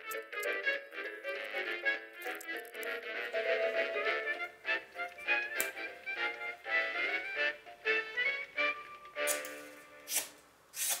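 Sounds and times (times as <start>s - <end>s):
background music: 0.0s - 10.3s
knife slicing through paper: 9.3s - 11.0s.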